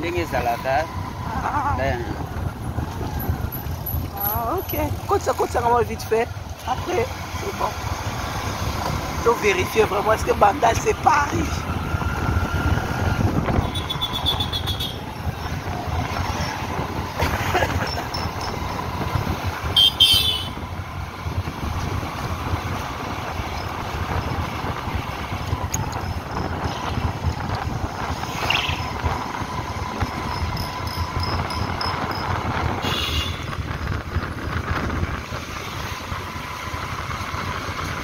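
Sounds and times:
motorcycle engine running: 0.9 - 38.0.

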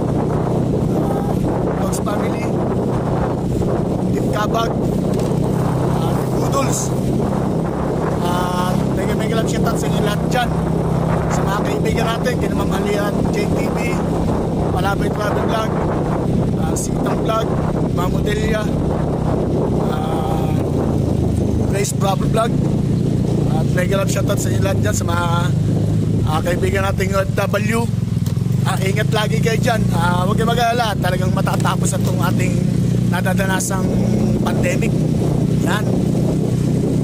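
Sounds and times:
motorcycle engine running: 0.0 - 37.0
road noise: 0.0 - 37.0
man talking: 0.9 - 2.6, 4.1 - 4.9, 5.8 - 7.0, 8.2 - 10.6, 11.3 - 15.8, 16.6 - 18.8, 19.8 - 20.8, 21.6 - 22.6, 23.4 - 25.6, 26.2 - 28.0, 28.6 - 35.0, 35.6 - 36.0.

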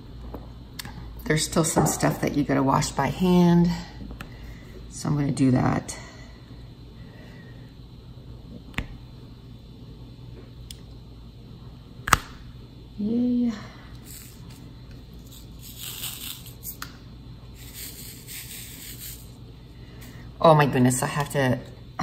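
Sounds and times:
steady low hum: 0.0 - 22.0
woman humming: 13.0 - 13.7
soft hissing noise: 13.9 - 20.4.

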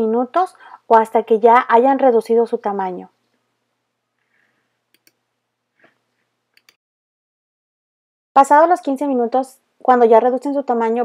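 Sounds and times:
faint clicks: 4.2 - 5.2, 5.8 - 6.8.

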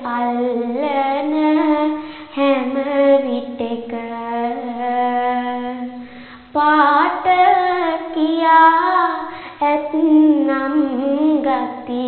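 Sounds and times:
girl chanting verses: 0.0 - 12.0
singer breath: 2.0 - 2.4, 6.0 - 6.5, 9.2 - 9.6.

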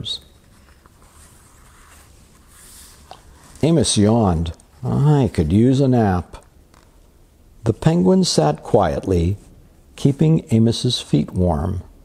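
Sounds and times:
paper page turning: 0.2 - 3.7.

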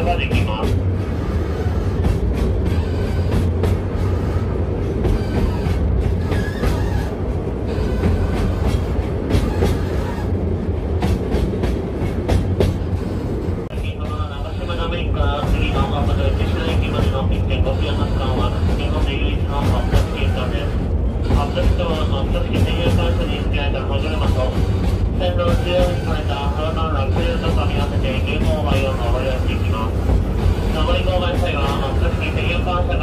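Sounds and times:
train wheels rumbling on rail: 0.0 - 33.0
track clicks and clatters: 13.6 - 33.0.

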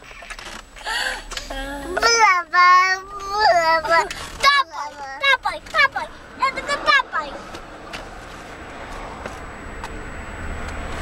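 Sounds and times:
child singing: 1.8 - 6.1.

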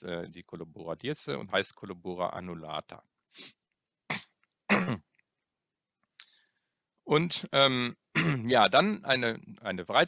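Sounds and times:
man clearing his throat: 4.1 - 5.1, 8.2 - 8.5.

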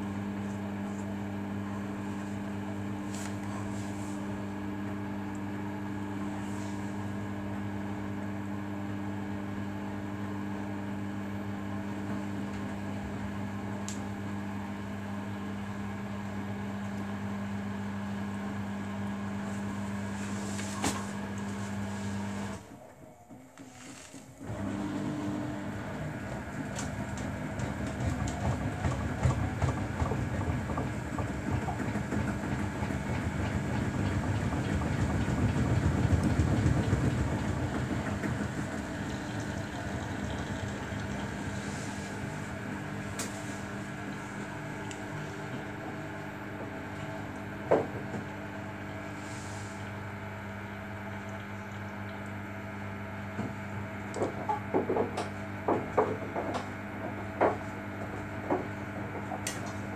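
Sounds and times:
washing machine drum turning: 24.5 - 49.1, 53.4 - 59.9.

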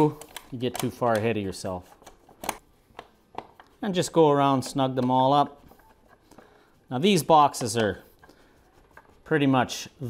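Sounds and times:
person speaking: 0.0 - 2.0, 3.6 - 10.0.

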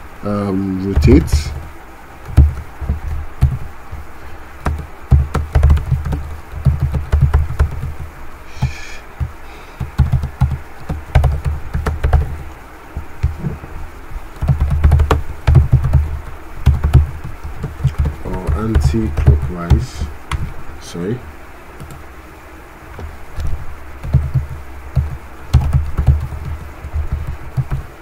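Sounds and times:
computer keyboard typing: 0.8 - 4.0, 4.6 - 12.4, 14.4 - 20.4, 24.0 - 27.9.

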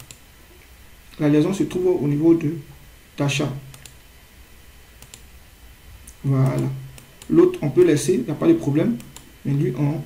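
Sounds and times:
computer mouse clicks: 0.0 - 0.2, 3.7 - 4.0, 5.0 - 5.3, 6.0 - 7.4, 9.0 - 9.3
low steady hum: 0.0 - 10.0.

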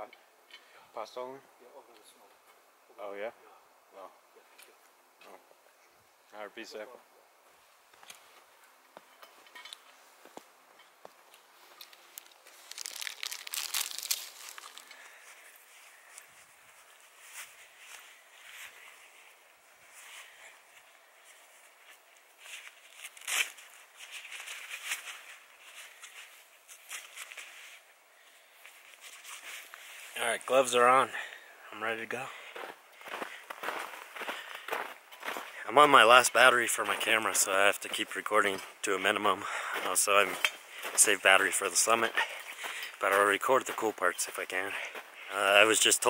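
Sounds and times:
gloves rustling: 9.8 - 30.6
plastic wrapper crinkling: 11.8 - 15.0.

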